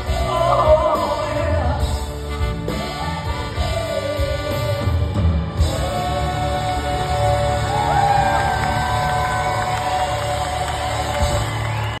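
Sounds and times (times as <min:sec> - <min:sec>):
crowd cheering: 0:05.7 - 0:12.0.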